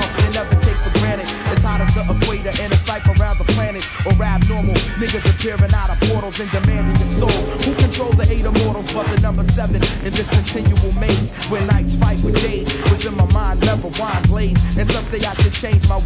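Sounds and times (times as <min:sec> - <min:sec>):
rapping over a heavy bass beat: 0:00.0 - 0:16.0.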